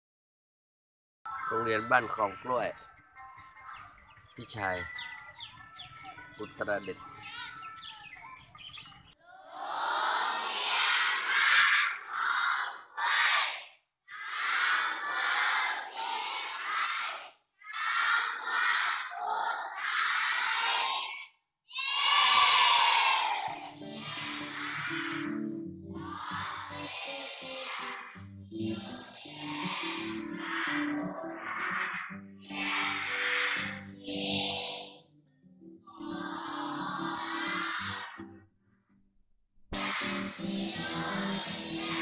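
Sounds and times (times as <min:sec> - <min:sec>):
children speaking in unison: 0:01.3 - 0:35.1, 0:35.9 - 0:38.3, 0:39.8 - 0:42.0.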